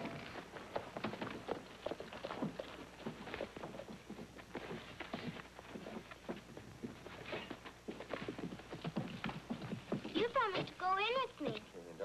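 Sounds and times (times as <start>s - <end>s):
hooves clopping on dirt: 0.0s - 11.8s.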